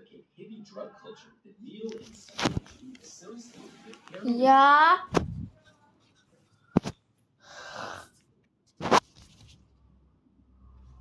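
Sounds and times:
sharp burst of breath: 7.4 - 8.1.

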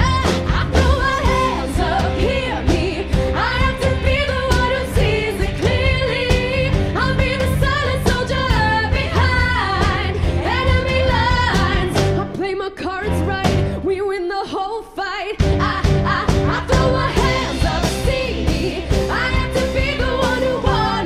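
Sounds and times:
live band playing: 0.0 - 14.0, 15.4 - 21.0
women singing: 0.0 - 21.0.

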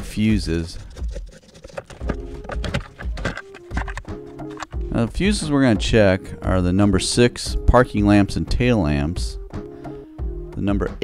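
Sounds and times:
soft background music: 0.0 - 11.0
plastic cover clicks and knocks: 0.8 - 4.8.

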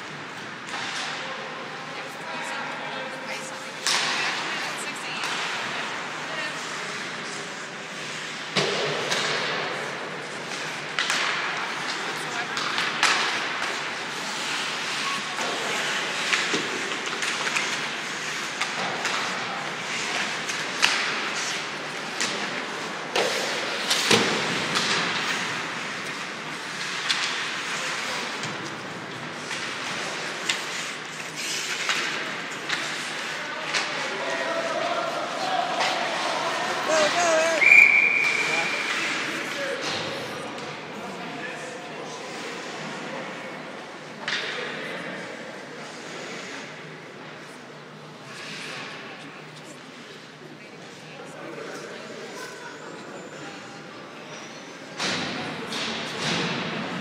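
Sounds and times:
indistinct crowd voices: 0.0 - 57.0.

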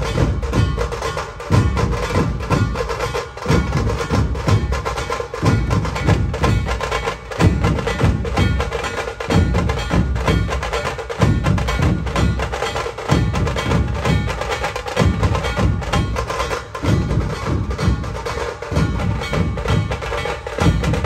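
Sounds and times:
heavy drum beats: 0.0 - 21.0.

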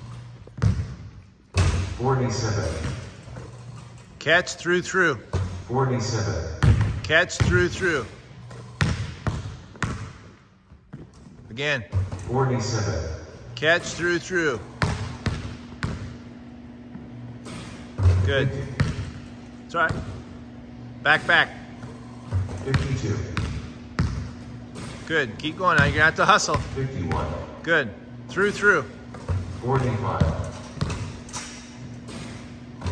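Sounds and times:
basketball bouncing on wooden floor: 0.4 - 2.0, 6.6 - 12.3, 14.6 - 20.4, 21.8 - 25.1, 25.7 - 27.5, 28.4 - 32.9
basketball hitting hardwood floor: 0.5 - 1.9, 6.6 - 7.8, 8.5 - 10.3, 17.5 - 19.2, 22.3 - 25.1, 25.8 - 27.4.

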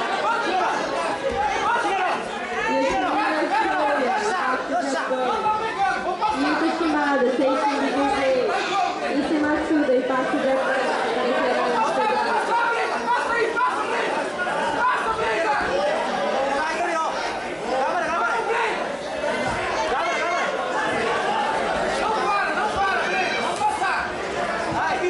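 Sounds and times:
crowd babble: 0.0 - 25.0.

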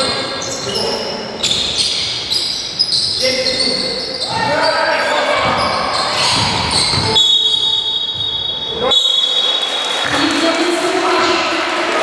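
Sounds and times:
sneakers squeaking: 0.0 - 10.5
basketball bouncing on wooden floor: 5.4 - 7.3.

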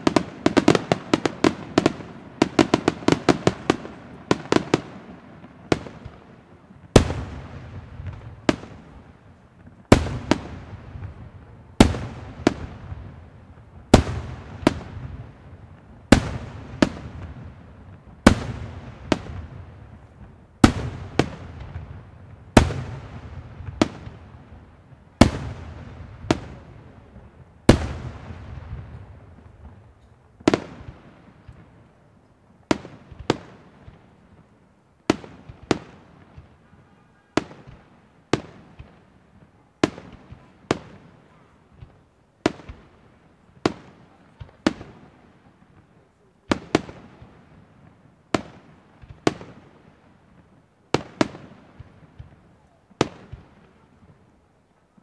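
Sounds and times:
fireworks bursting with echo: 0.0 - 55.0.

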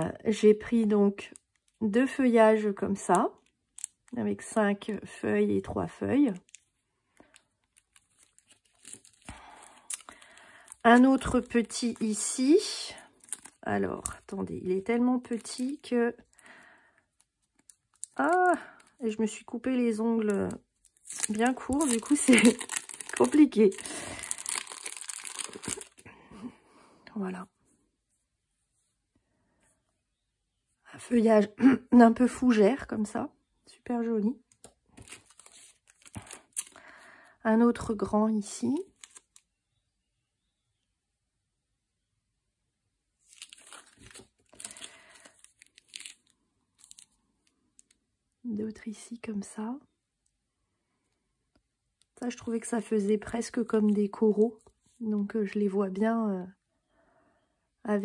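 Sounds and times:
plastic sleeve crinkling: 1.3 - 1.8, 3.0 - 4.2, 6.2 - 26.2, 34.5 - 36.9, 38.8 - 39.5, 43.2 - 48.0.

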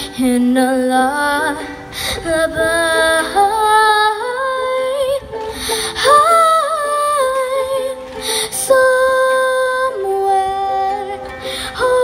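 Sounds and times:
girl singing wordless melody: 0.0 - 12.0
ukulele: 0.0 - 12.0.

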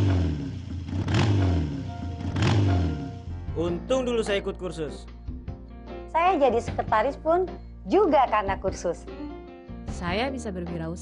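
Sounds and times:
motorcycle engine revving: 0.0 - 3.4.

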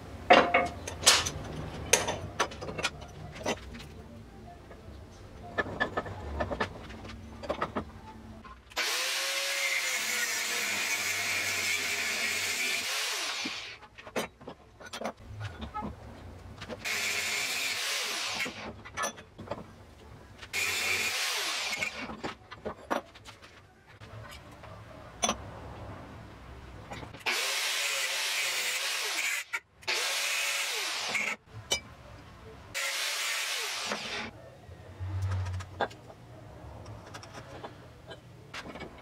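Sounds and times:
angle grinder on metal: 8.8 - 13.8, 16.8 - 18.7, 20.6 - 22.1, 27.2 - 31.4, 32.8 - 34.3
metallic clicks from handling parts: 36.8 - 39.0.

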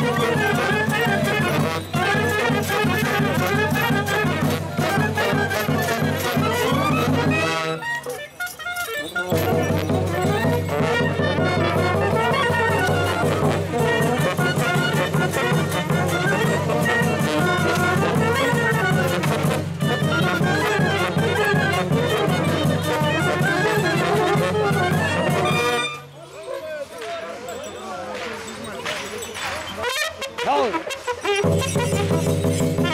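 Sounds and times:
brass band playing: 0.0 - 26.1, 29.8 - 32.9.

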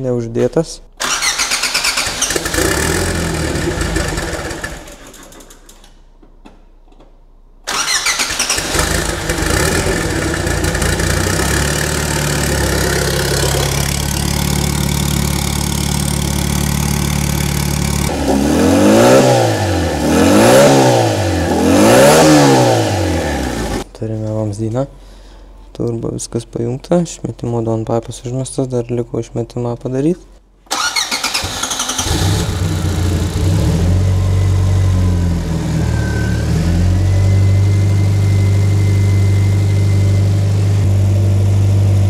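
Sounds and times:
car engine idling and revving: 2.2 - 5.0, 8.6 - 23.8, 31.6 - 42.0.

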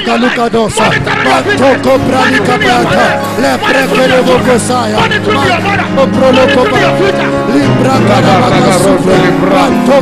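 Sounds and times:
live church band: 0.0 - 10.0
many voices praying aloud: 0.0 - 10.0.

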